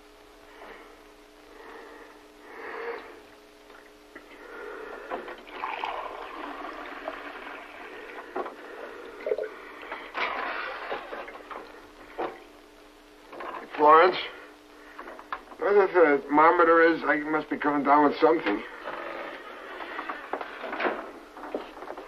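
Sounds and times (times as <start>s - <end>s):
tap water running into sink: 5.3s - 7.8s.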